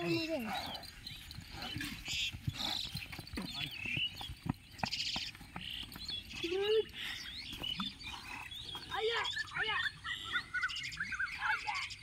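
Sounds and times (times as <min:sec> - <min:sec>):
birds chirping and trilling: 0:00.0 - 0:12.0.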